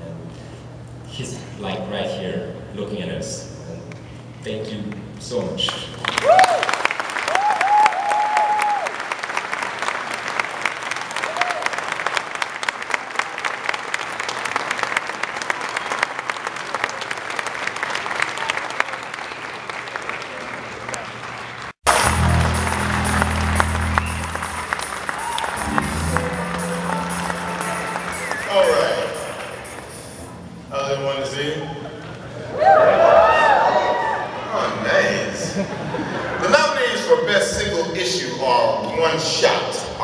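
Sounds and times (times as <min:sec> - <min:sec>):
audience applauding: 0:05.6 - 0:30.2
people whooping: 0:06.2 - 0:09.0, 0:11.2 - 0:11.8, 0:21.9 - 0:30.0, 0:31.6 - 0:34.5
music with low bass line: 0:21.9 - 0:31.0.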